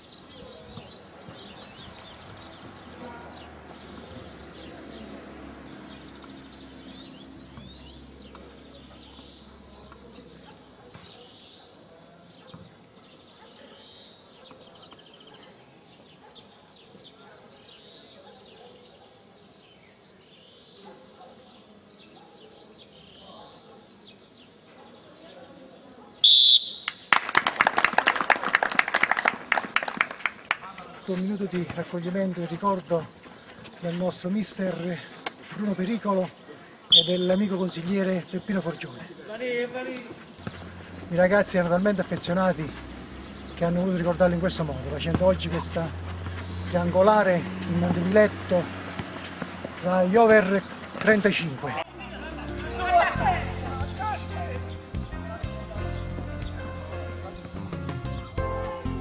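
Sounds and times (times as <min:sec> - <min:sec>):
small birds chirping: 0:00.0 - 0:27.1, 0:29.8 - 0:59.0
referee's whistle blast: 0:26.2 - 0:27.0, 0:36.9 - 0:37.4
people clapping: 0:26.8 - 0:32.0.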